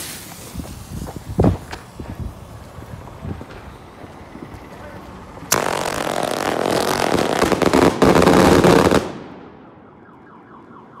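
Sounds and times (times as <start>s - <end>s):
firework hiss: 0.0s - 4.4s, 5.1s - 9.0s
firework rapid rattle: 0.0s - 4.8s.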